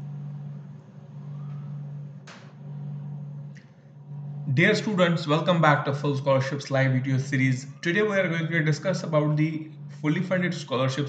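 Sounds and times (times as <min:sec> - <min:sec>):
low hum: 0:00.0 - 0:11.0.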